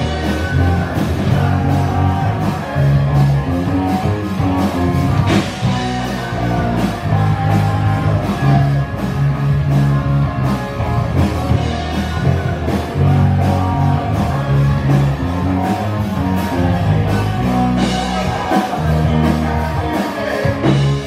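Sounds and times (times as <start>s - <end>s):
bass guitar: 0.0s - 21.0s
drum kit beat: 0.0s - 21.0s
electric guitar: 0.0s - 21.0s.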